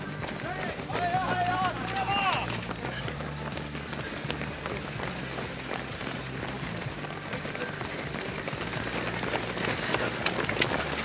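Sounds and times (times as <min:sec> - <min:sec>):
runners' footsteps on pavement: 0:00.0 - 0:11.0.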